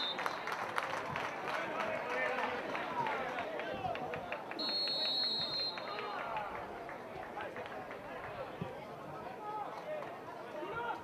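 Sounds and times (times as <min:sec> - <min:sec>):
whistle blast: 0:00.0 - 0:00.4, 0:04.6 - 0:06.0.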